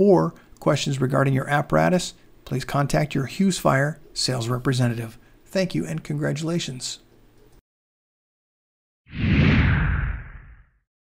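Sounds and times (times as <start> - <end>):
whoosh: 9.1 - 10.8
deep rumble: 9.2 - 10.7.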